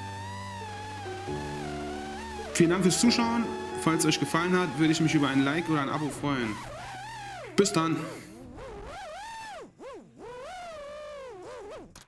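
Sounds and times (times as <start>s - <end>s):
quadcopter motors whining: 0.0s - 12.0s.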